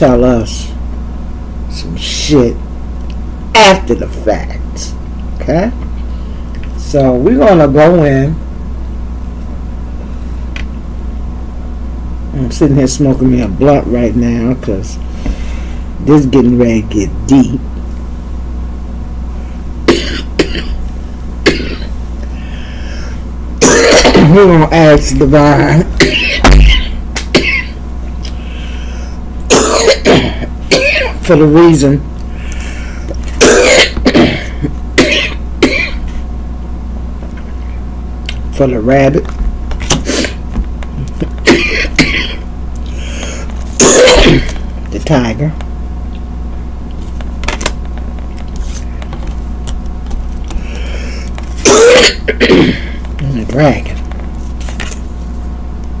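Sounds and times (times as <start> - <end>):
steady low hum: 0.0 - 56.0
man coughing: 19.9 - 20.8, 21.4 - 21.9, 23.6 - 24.4, 26.0 - 27.8, 29.5 - 31.2, 33.4 - 36.2, 41.0 - 42.4, 43.8 - 44.6, 51.6 - 53.0.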